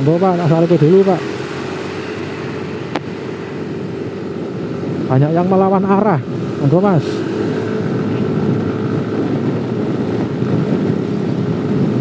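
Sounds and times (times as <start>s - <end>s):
motorcycle riding hum: 0.0s - 12.0s
wind and road noise: 0.0s - 12.0s.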